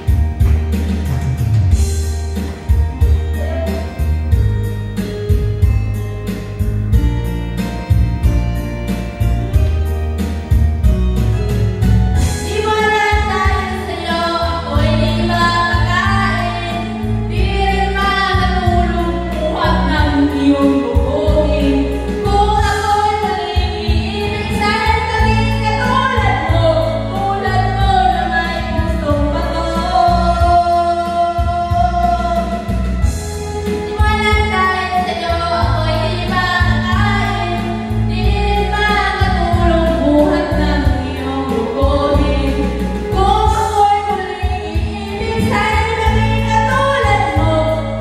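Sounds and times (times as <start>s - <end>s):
backing track with bass and beat: 0.0s - 48.0s
woman singing into microphone: 12.2s - 48.0s.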